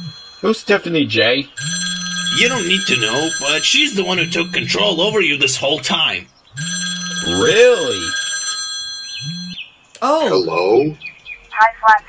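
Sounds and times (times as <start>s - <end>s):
smartphone electronic ringtone: 1.6s - 5.7s, 6.6s - 9.6s.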